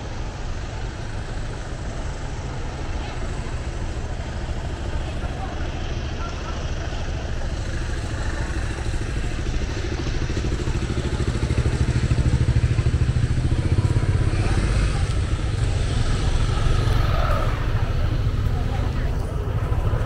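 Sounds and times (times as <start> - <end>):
motor scooter engines: 0.0 - 20.0.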